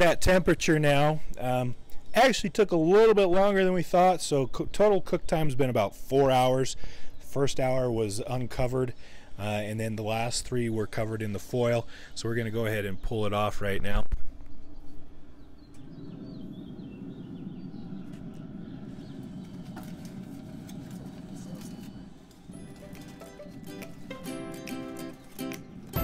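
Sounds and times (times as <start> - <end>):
steady low rush: 14.3 - 26.0
plucked string music: 22.5 - 26.0.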